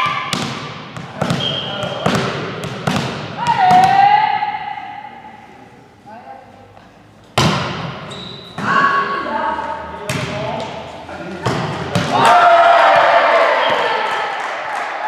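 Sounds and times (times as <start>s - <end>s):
volleyball smacks: 7.4s - 8.0s
players shouting: 12.0s - 15.0s.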